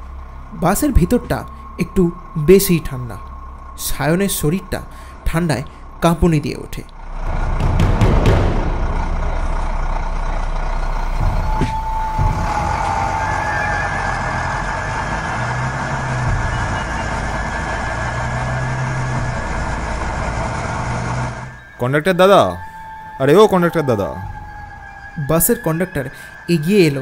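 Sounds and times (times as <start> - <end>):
bus engine running: 0.0 - 27.0
road noise: 0.0 - 27.0.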